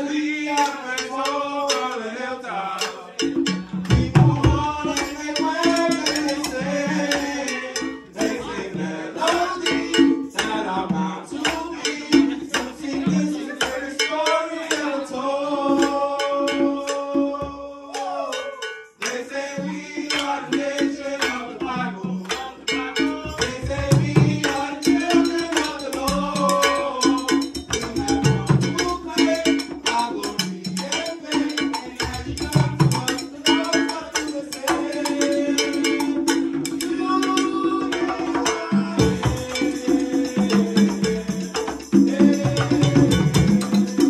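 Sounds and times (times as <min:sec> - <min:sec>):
held sung notes: 0:00.0 - 0:44.0
latin hand percussion playing: 0:00.0 - 0:44.0.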